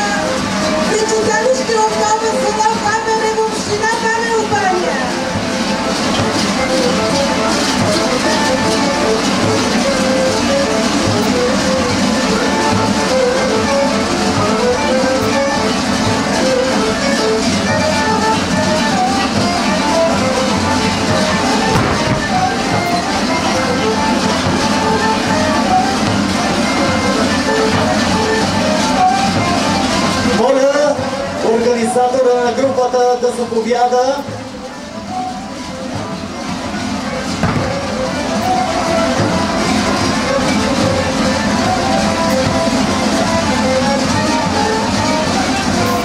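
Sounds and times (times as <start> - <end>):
bells clanging: 0.0 - 33.1
folk dance music: 0.0 - 46.0.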